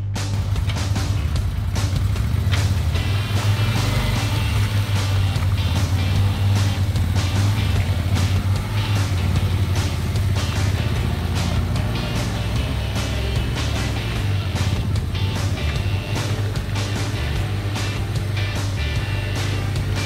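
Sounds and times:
background music with beat: 0.0s - 20.0s
vehicle engine running: 0.0s - 20.0s.

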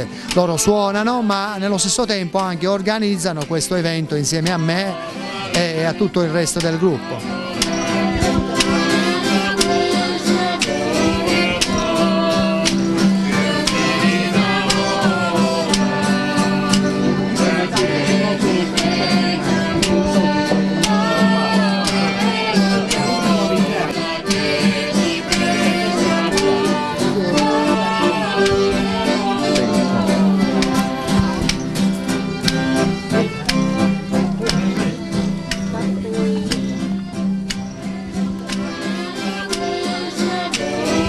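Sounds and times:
acoustic guitar strumming: 0.0s - 41.0s
harmonica melody: 0.0s - 41.0s.

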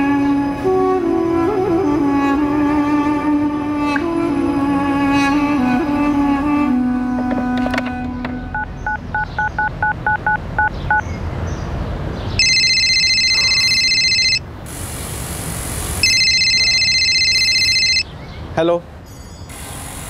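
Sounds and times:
telephone keypad tones: 8.6s - 11.0s, 12.4s - 14.4s, 16.0s - 18.0s
telephone ringing: 12.4s - 14.4s, 16.0s - 18.1s.

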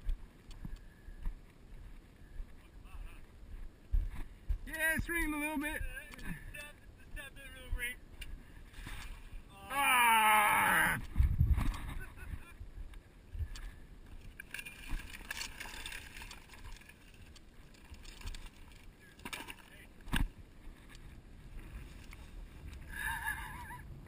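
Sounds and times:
person calling out loudly: 9.5s - 11.0s
faint rustling and handling noise: 11.0s - 22.9s.

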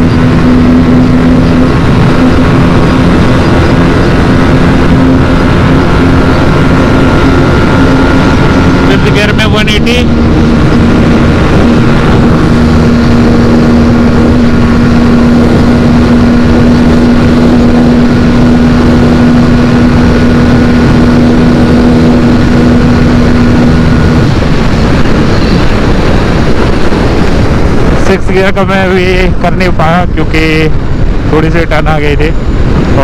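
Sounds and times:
motorcycle engine at high revs: 0.0s - 33.0s
wind rush: 0.0s - 33.0s.

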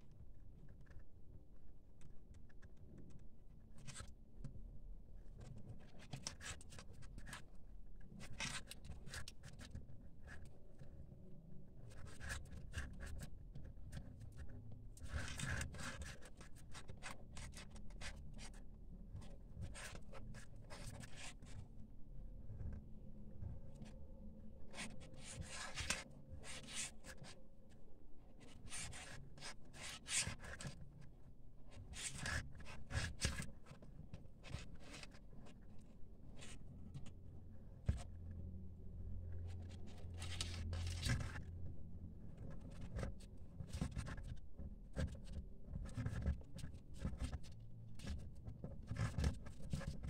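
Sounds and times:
paper yarn rustling on crochet hook: 11.8s - 21.8s, 24.7s - 27.4s, 28.4s - 31.1s, 31.7s - 50.0s.

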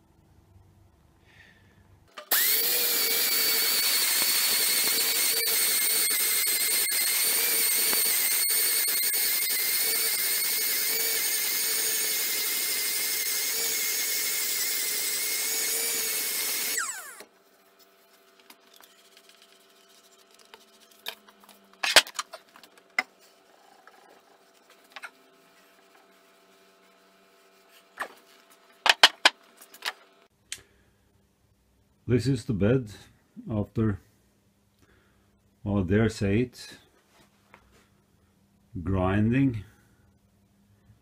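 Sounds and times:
air sander whining: 2.2s - 17.3s
sander spinning down: 2.2s - 17.3s.

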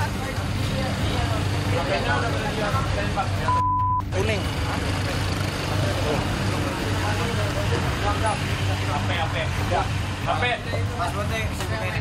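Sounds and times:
indistinct talk: 0.0s - 12.0s
censor bleep: 3.5s - 4.1s.

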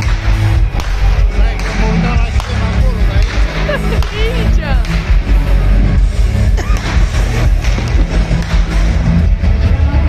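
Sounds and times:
loud live pop concert music: 0.0s - 10.0s.

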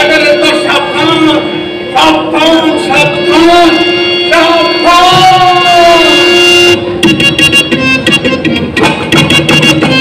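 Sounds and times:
man's long shout: 4.4s - 6.3s.

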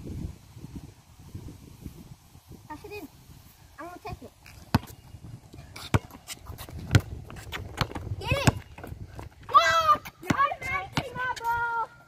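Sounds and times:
basketball bouncing on concrete: 4.6s - 5.0s, 5.8s - 11.6s
boy shouting: 8.2s - 8.7s, 9.5s - 12.0s.

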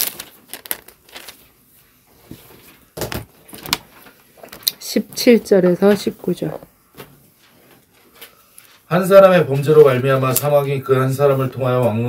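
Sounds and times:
pages rustling: 0.0s - 6.2s.

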